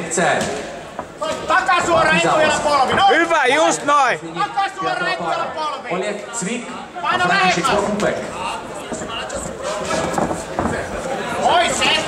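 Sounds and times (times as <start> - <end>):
indistinct voices and chatter: 0.0 - 12.0.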